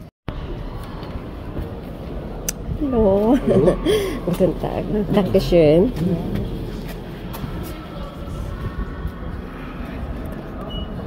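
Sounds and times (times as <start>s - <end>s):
faint indistinct voices: 0.3s - 11.0s
steady low rumble: 0.3s - 11.0s.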